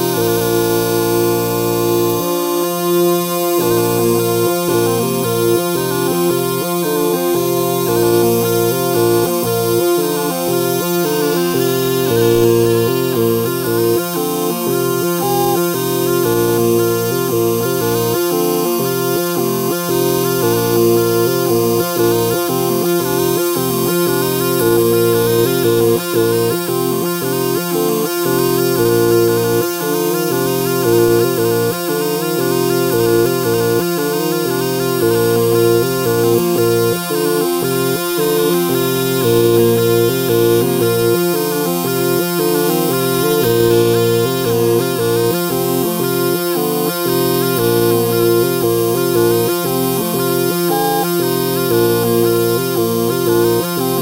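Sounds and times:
bagpipe playing a quick tune: 10.8s - 18.1s, 50.3s - 52.0s.

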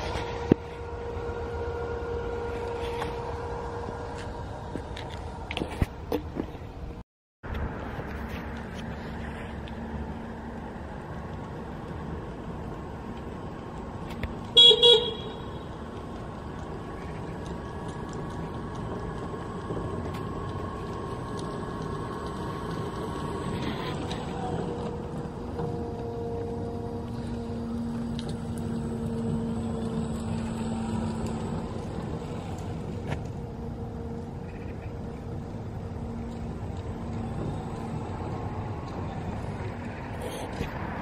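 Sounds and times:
tyres rumbling on paving: 0.0s - 41.0s
wind: 0.0s - 41.0s
short horn toots: 14.6s - 15.6s.

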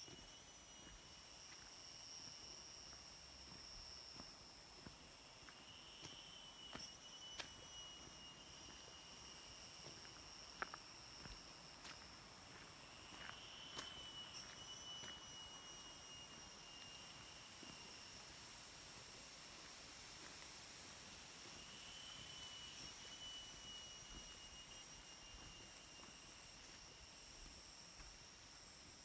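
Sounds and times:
insects whining: 0.0s - 29.0s.

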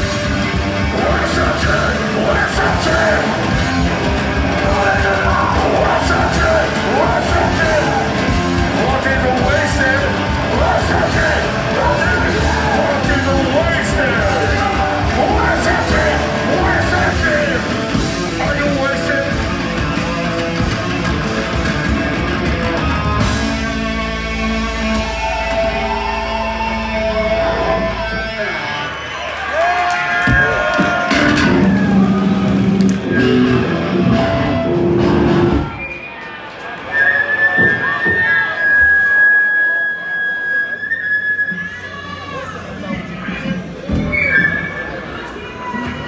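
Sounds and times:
punk band playing loud: 0.0s - 29.1s, 29.8s - 35.9s
distorted electric guitars and bass: 0.0s - 29.3s, 30.3s - 35.8s
shouted lead vocal: 0.6s - 19.5s, 22.6s - 35.8s.

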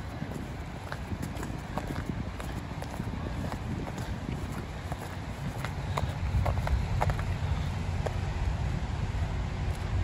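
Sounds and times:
footsteps on slushy asphalt: 0.0s - 8.8s
low steady rumble: 0.0s - 10.0s.

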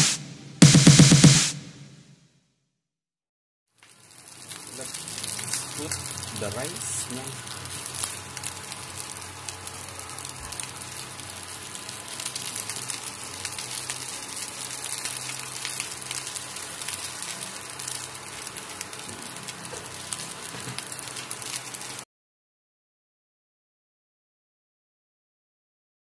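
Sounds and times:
rice frying in a wok: 3.7s - 22.1s.

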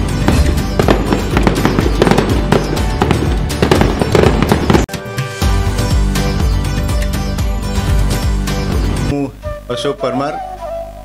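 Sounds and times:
fireworks crackling and bursting: 0.0s - 4.9s
background music: 0.0s - 11.0s.

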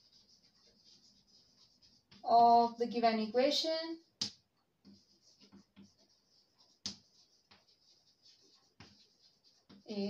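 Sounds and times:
chalk tap: 0.0s - 2.5s, 4.0s - 10.0s
chalk scratching on blackboard: 0.0s - 10.0s.

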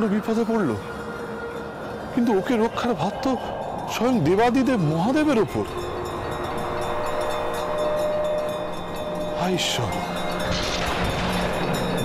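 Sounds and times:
held drone tones: 0.0s - 12.0s.

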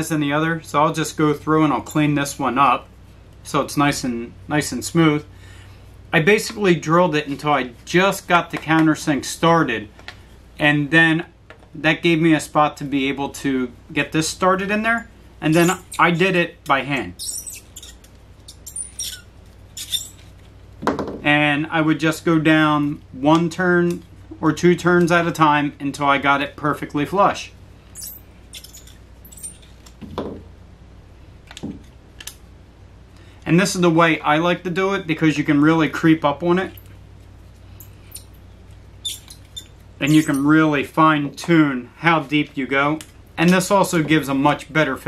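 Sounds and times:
low steady hum: 0.0s - 45.0s
high squeak: 15.5s - 16.2s, 17.2s - 20.3s, 28.0s - 29.7s, 39.0s - 40.5s.

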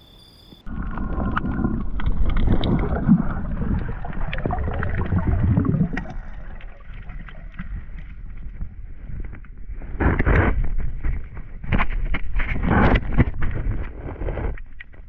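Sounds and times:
muffled water and wind rumble: 0.7s - 15.0s.

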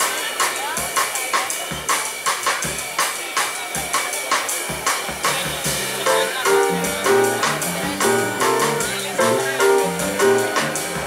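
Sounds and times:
funk drum groove: 0.0s - 11.0s
band melody line: 5.3s - 11.0s.

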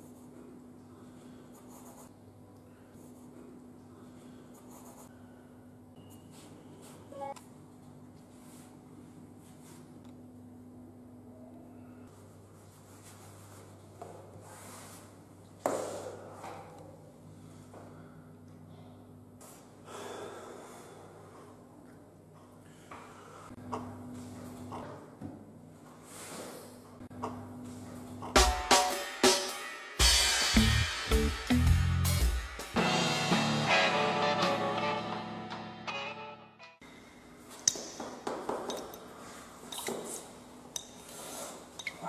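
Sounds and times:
low room hum: 0.0s - 28.4s
pen scratching on paper: 1.6s - 2.1s
man breathing out hard: 19.8s - 21.2s.

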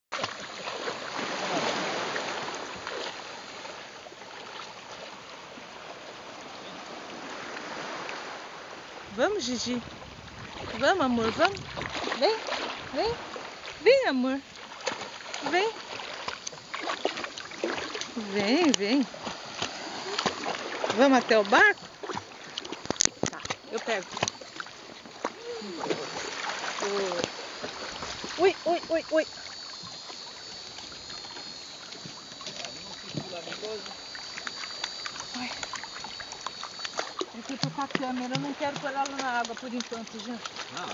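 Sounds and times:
seawater sloshing around wading person: 0.1s - 40.9s
small splashes: 0.1s - 40.9s.

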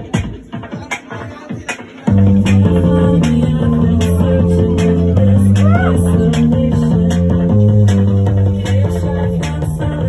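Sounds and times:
bass and guitars: 2.1s - 10.0s.

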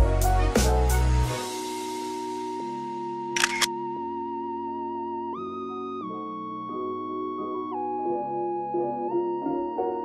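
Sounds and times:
camera shutter double click: 3.4s - 3.7s
soft keyboard chords: 4.0s - 10.0s.

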